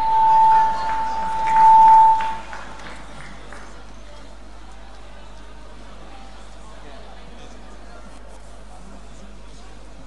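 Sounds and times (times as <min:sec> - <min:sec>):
microphone feedback whistle: 0:00.0 - 0:02.7.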